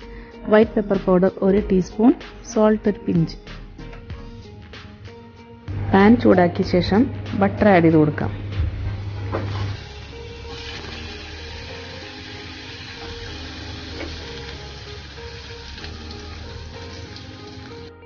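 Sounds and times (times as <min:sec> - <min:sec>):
soft background music: 0:00.0 - 0:18.0.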